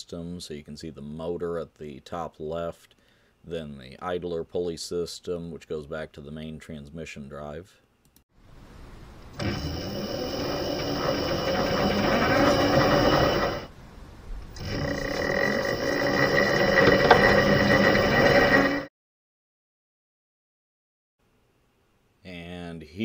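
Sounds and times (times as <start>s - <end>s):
electric motor whine with belt noise: 9.4s - 13.7s, 14.6s - 18.9s.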